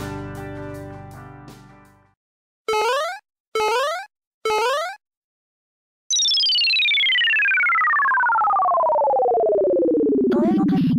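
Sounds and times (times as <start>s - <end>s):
electronic falling tone: 6.1s - 10.3s.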